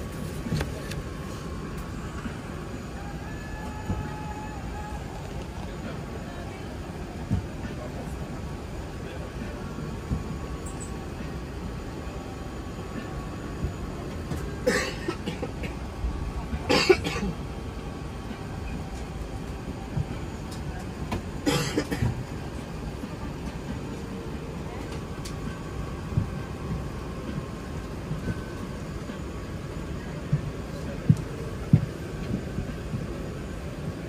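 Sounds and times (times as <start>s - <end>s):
airplane cabin drone: 0.0s - 34.0s.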